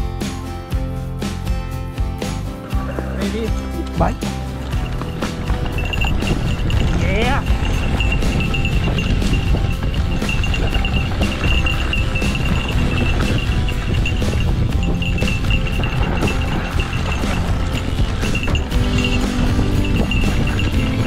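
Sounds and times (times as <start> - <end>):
bike rattling over rough trail: 2.8 - 21.0
bike tyres rumbling: 4.2 - 21.0
wind on camera: 4.8 - 21.0.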